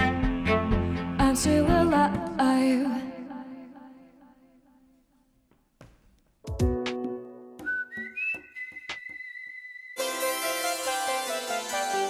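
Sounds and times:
high whistle-like tone: 7.6 - 10.3.

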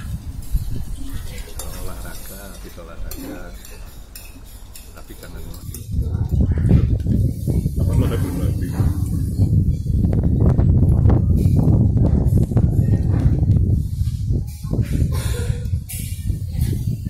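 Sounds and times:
cutlery clinking against plates: 0.0 - 7.1
indistinct voices: 0.0 - 17.0
low rumble: 5.8 - 17.0.

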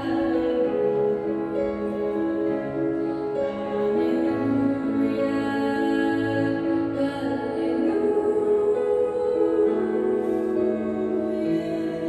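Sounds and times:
held keyboard chords: 0.0 - 12.0.

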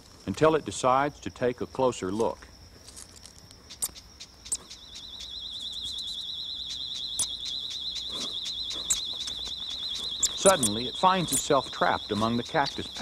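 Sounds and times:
warbling insect trill: 0.0 - 13.0
short high ticks and chirps: 3.4 - 13.0.

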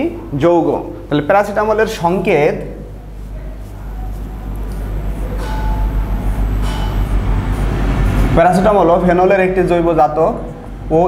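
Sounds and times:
low mechanical rumble: 2.6 - 11.0.

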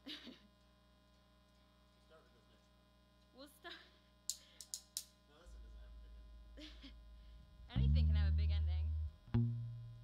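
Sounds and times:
amplifier electrical hum: 0.0 - 10.0.

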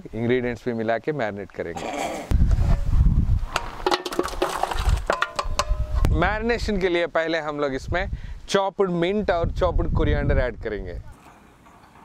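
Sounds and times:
metal cookware clinking: 3.8 - 6.1.

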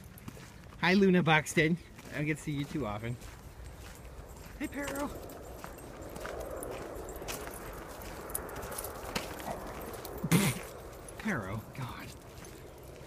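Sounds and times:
footsteps on gravel: 0.0 - 13.0.

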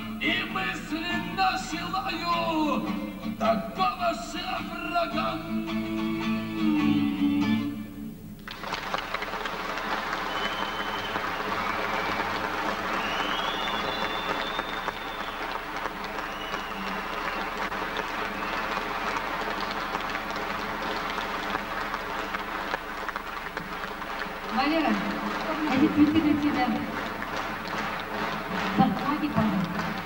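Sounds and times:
audience applauding: 8.4 - 30.0
high whistles: 10.1 - 19.3.

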